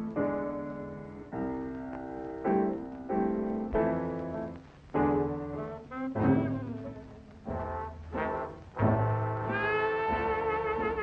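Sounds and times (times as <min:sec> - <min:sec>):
brass section held chords: 0:05.4 - 0:11.0.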